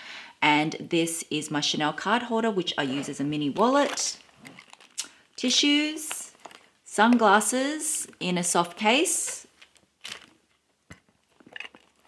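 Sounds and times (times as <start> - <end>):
rustling in a handbag: 3.6 - 6.8.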